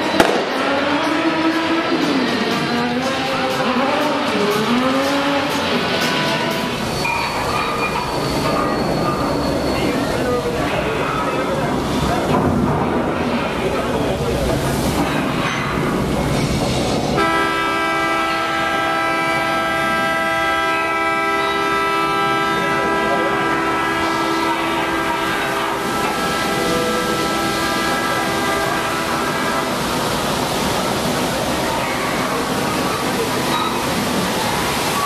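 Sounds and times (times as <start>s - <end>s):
water rushing down rocks: 0.0s - 17.5s, 21.0s - 35.0s
broad rumbling noise: 0.0s - 35.0s
horn sounding chord: 17.2s - 29.8s.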